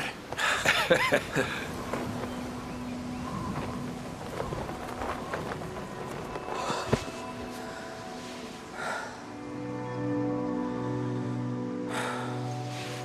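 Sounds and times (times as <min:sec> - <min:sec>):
soft music: 0:01.4 - 0:13.0.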